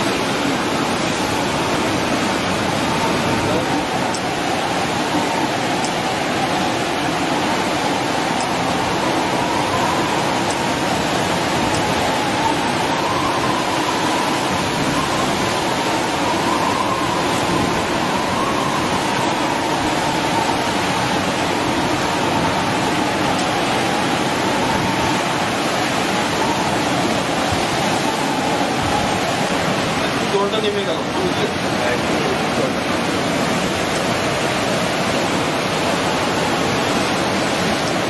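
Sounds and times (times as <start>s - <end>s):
heavy surf: 0.0s - 38.0s.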